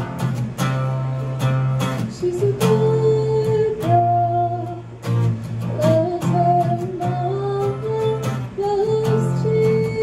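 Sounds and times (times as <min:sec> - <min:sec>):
strummed acoustic guitar: 0:00.0 - 0:10.0
woman singing long notes: 0:02.0 - 0:04.9, 0:05.7 - 0:10.0.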